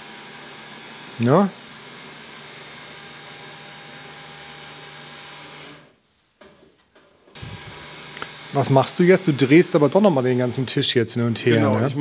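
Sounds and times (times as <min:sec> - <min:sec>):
electric machine hum: 0:07.3 - 0:12.0.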